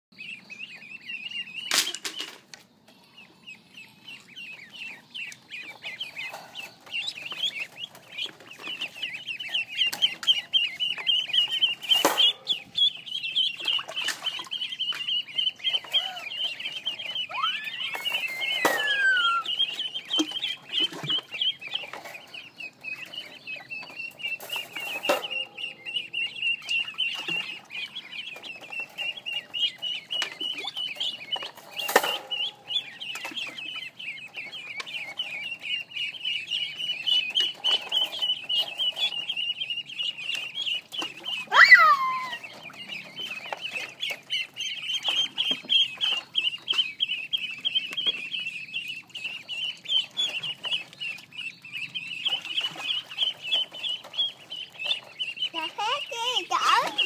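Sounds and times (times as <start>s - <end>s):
ducklings peeping: 0.1s - 57.0s.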